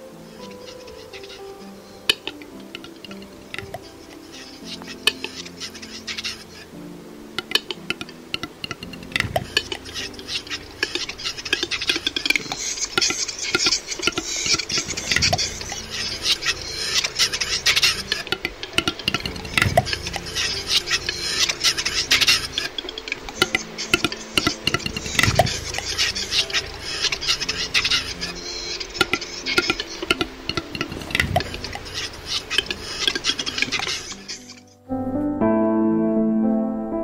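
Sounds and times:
twigs crackling and rustling: 0.4 - 34.8.

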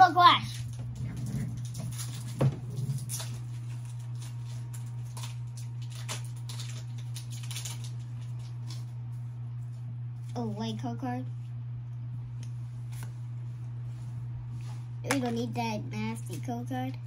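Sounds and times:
trading cards rustling: 0.4 - 8.9.

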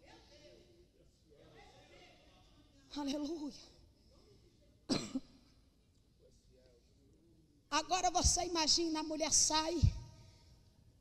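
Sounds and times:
person coughing: 4.9 - 5.4.

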